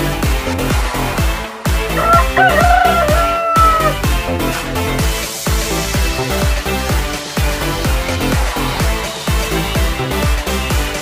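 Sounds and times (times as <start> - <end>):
electronic dance music: 0.0 - 11.0
rooster crowing: 1.9 - 4.0.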